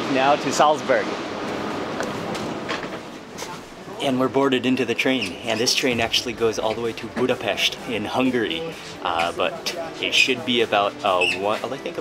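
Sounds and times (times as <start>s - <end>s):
railway platform rushing noise: 0.0s - 10.5s.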